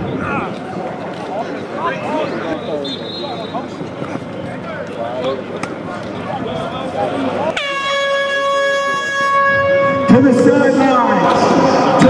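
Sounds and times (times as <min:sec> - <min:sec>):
air horn steady tone: 0:02.6 - 0:03.7, 0:07.5 - 0:11.2.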